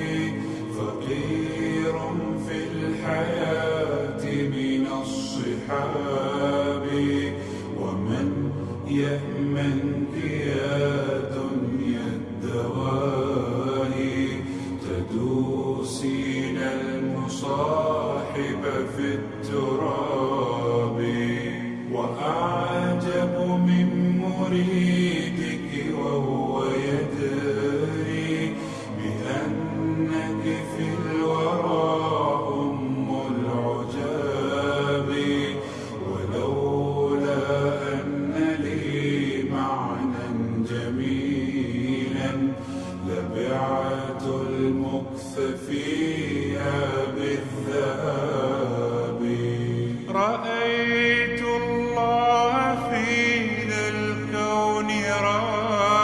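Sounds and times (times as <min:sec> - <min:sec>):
male voices chanting in harmony: 0:00.0 - 0:56.0.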